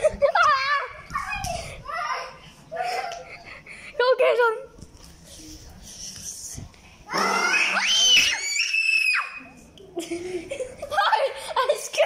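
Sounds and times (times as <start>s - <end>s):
child screaming: 7.1s - 9.4s.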